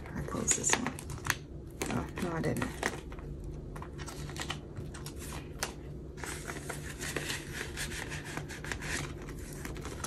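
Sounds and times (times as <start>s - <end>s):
plastic and paper clicks and crinkles: 0.1s - 10.0s.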